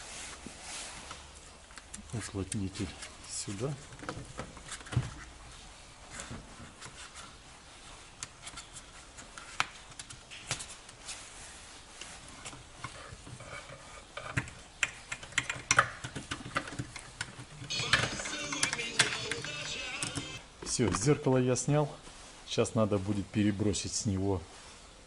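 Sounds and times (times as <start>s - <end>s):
rustling and scraping: 0.0s - 15.2s.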